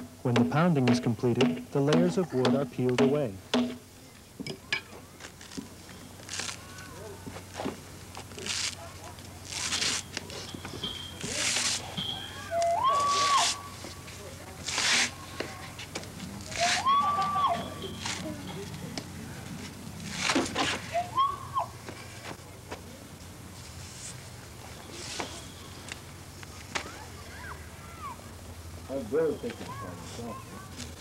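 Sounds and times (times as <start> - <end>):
high-pitched calls: 9.5 - 13.8, 16.5 - 18.8.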